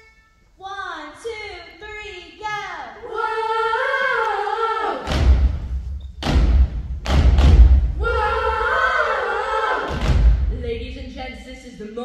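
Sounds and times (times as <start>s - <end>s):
a cappella group singing: 2.7s - 5.3s, 8.0s - 10.2s
heavy beat thumps: 5.0s - 9.2s, 9.8s - 11.3s.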